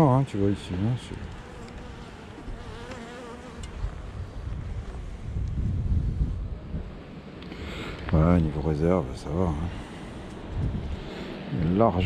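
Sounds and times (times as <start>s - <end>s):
honeybees buzzing: 0.0s - 5.4s, 8.5s - 12.0s
close bee humming: 0.0s - 6.6s
wind rumble on microphone: 1.1s - 12.0s.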